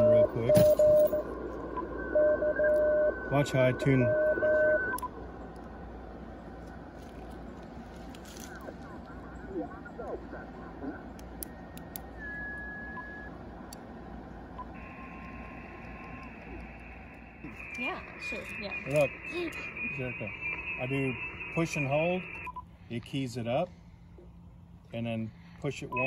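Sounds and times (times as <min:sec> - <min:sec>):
radio static: 0:00.0 - 0:13.4, 0:14.6 - 0:22.5
faint sliding radio signals: 0:00.0 - 0:23.6
steady whistle tone: 0:12.1 - 0:13.3, 0:14.6 - 0:22.6.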